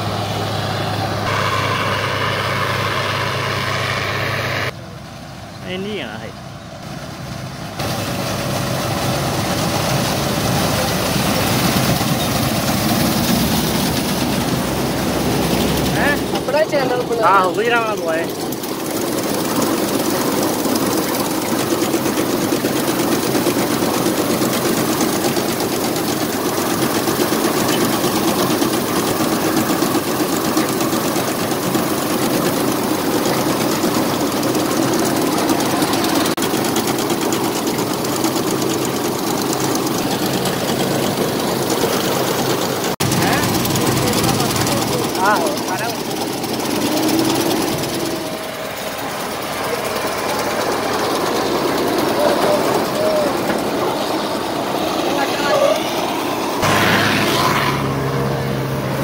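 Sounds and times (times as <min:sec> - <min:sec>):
combine harvester running: 0:00.0 - 0:59.0.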